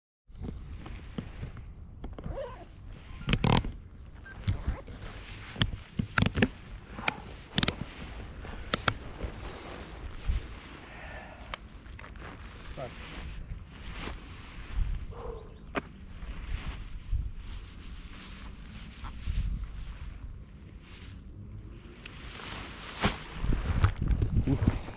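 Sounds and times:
wind rumbling on microphone: 0.3 - 24.9
knocks and fabric rustles: 0.4 - 24.9.

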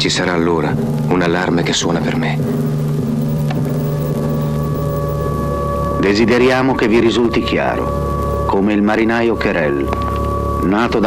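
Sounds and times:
steady low hum: 0.2 - 10.7
held tones: 2.2 - 6.1.

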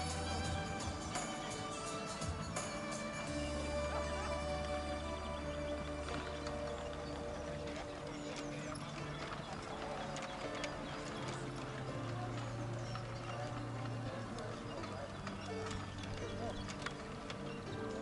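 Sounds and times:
horse hoofbeats trotting: 0.0 - 18.0
music playing: 0.0 - 18.0.

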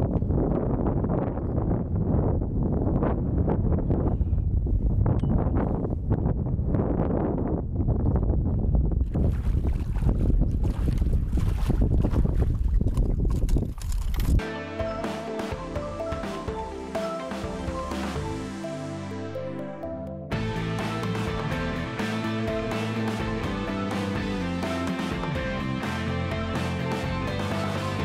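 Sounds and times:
wind buffeting microphone: 0.0 - 14.4
music: 14.4 - 28.0.

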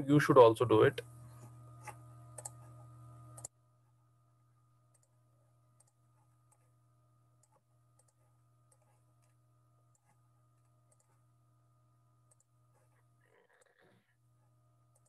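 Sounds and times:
low steady hum: 0.0 - 13.3, 13.9 - 15.0
faint irregular clicks: 1.3 - 2.7, 5.8 - 6.7, 7.4 - 11.2, 12.3 - 13.9.

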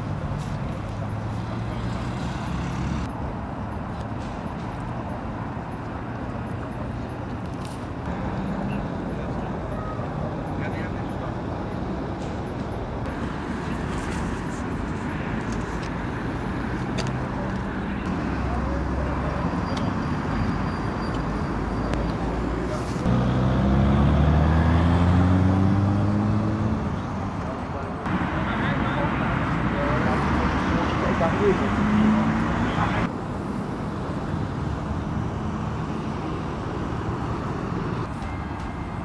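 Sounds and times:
motorway traffic noise: 0.0 - 39.0
engine accelerating: 23.1 - 26.9.

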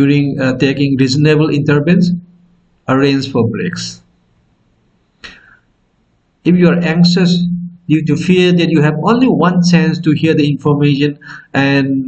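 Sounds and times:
faint room hiss: 0.0 - 12.0
soft intake of breath: 5.2 - 5.8, 11.2 - 11.5.

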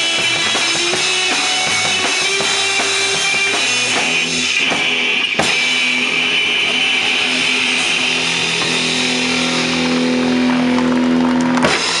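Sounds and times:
electric guitar sustained note: 0.0 - 12.0.

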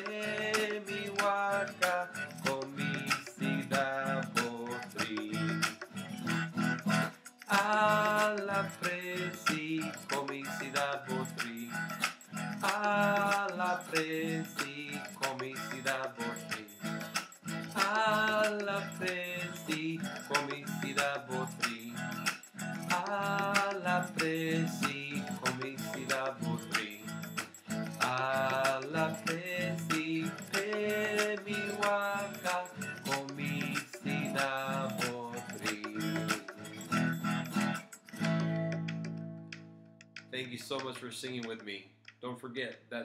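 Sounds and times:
man singing: 0.0 - 5.9, 7.5 - 17.0, 17.8 - 36.9
acoustic guitar strummed: 0.0 - 41.8.

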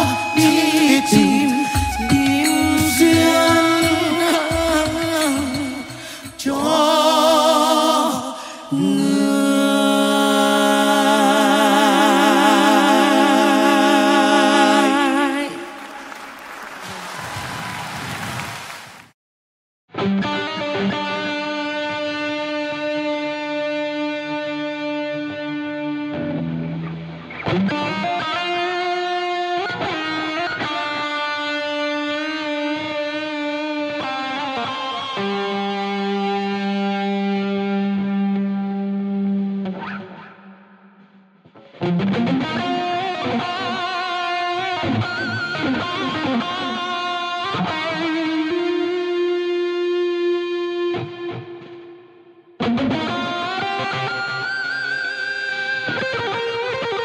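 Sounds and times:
distorted electric guitar chords: 0.0 - 7.6, 19.9 - 57.0.

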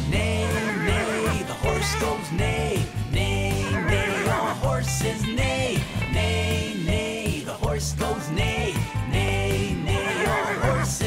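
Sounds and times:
children's song backing music: 0.0 - 11.0
horse whinny: 0.5 - 2.8, 3.6 - 4.6.

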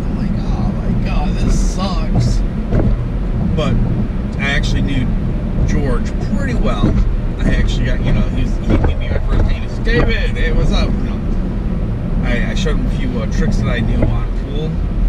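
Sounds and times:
people talking: 0.0 - 2.4, 3.5 - 3.8, 4.4 - 11.3, 12.2 - 14.8
car road and engine rumble: 0.0 - 15.0.

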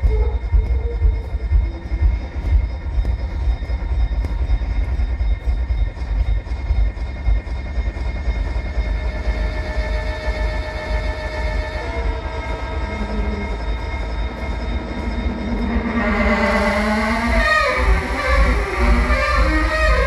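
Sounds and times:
steady high tones: 0.0 - 20.0
train rumble with rail noise: 0.0 - 20.0.

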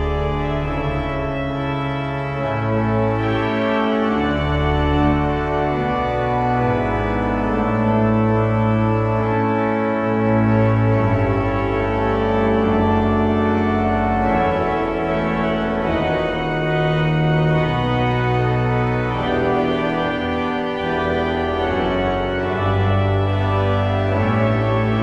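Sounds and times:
pipe organ chords: 0.0 - 25.0.

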